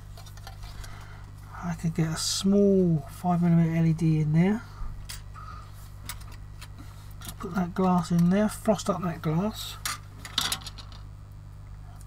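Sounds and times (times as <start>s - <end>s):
low steady hum: 0.0s - 12.0s
plastic parts clattering: 10.2s - 11.0s.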